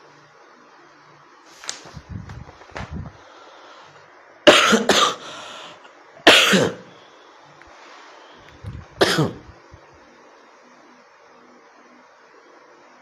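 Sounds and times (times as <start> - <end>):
man coughing: 4.5 - 5.2, 6.3 - 6.9, 9.0 - 9.5.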